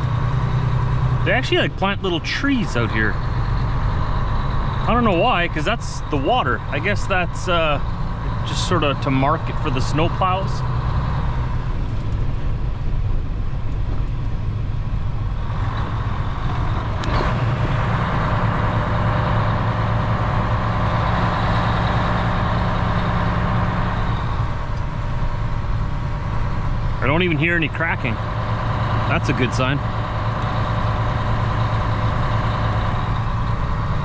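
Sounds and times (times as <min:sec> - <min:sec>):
truck diesel engine running: 0:00.0 - 0:34.0.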